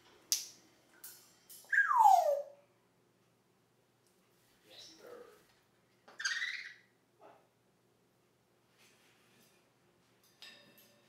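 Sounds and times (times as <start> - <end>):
parrot falling whistle: 1.7 - 2.5.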